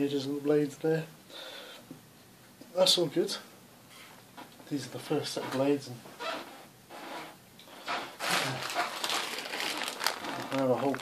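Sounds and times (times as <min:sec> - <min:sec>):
plastic bag crinkling: 0:08.2 - 0:11.0.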